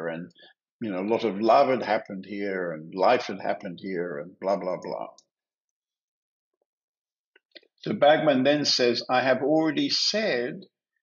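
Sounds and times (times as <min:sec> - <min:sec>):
man's voice: 0:00.0 - 0:05.2, 0:07.8 - 0:10.6.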